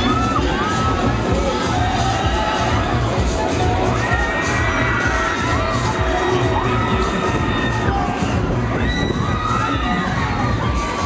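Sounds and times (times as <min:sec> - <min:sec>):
loud crowd din: 0:00.0 - 0:11.0.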